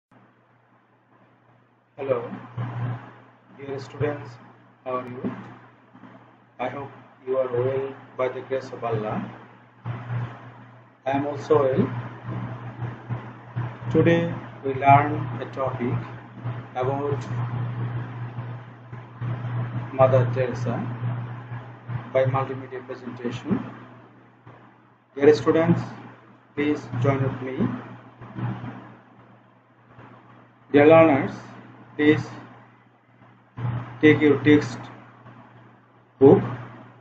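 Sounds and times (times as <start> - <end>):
steady low hum: 0.2 - 37.0.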